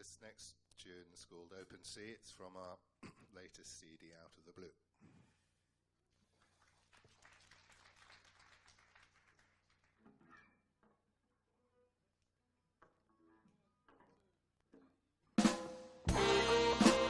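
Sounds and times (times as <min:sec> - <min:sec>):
jazz fusion band playing: 0:16.1 - 0:17.0.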